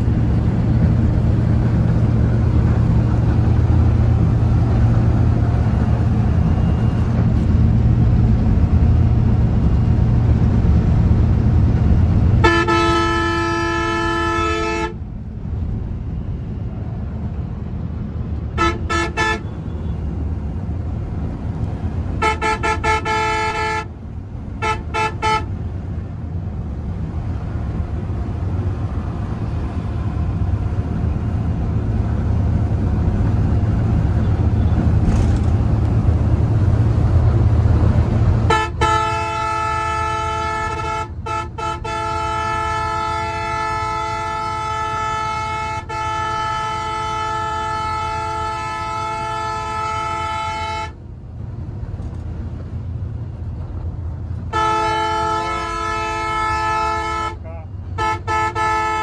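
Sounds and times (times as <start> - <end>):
engine and road rumble: 0.0 - 59.0
coach horn tooting: 12.4 - 15.0, 18.5 - 19.9, 22.2 - 23.9, 24.6 - 25.6, 38.5 - 51.0, 54.5 - 59.0.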